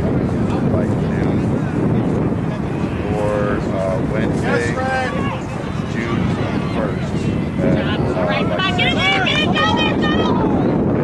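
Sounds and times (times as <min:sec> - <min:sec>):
wind buffeting microphone: 0:00.0 - 0:11.0
distant shouts of players: 0:07.7 - 0:10.7.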